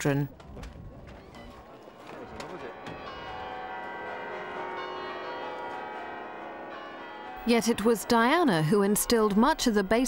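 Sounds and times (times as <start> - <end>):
church bells ringing: 1.4 - 10.0.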